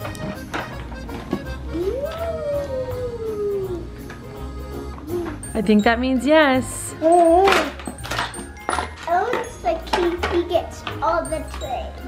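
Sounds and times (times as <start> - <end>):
background music: 0.0 - 12.0
child vocalizing high-pitched: 1.7 - 4.0.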